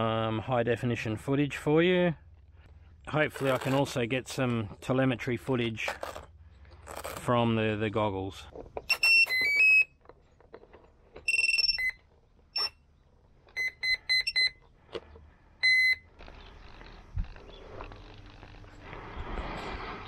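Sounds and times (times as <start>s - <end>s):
rustle of plane being handled: 2.6s - 7.4s, 16.2s - 20.0s.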